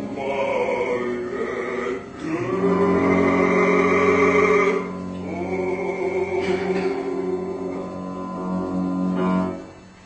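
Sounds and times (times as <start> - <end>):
operatic bass voice singing: 0.0 - 8.2
piano accompaniment: 0.0 - 10.0.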